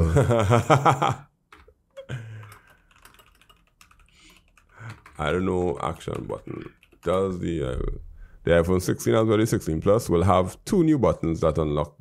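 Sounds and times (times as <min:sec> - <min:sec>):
keyboard typing: 0:01.5 - 0:07.4.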